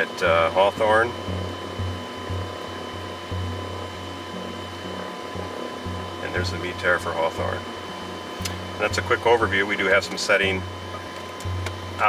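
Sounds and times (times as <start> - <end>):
faint high whine: 0.0 - 12.0
low machine hum: 0.0 - 12.0.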